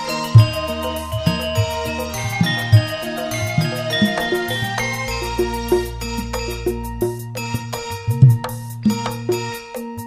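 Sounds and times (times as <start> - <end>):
gamelan metallophones ringing: 0.0 - 9.6
hand-drum strokes: 0.0 - 10.0
low bass: 0.4 - 9.6.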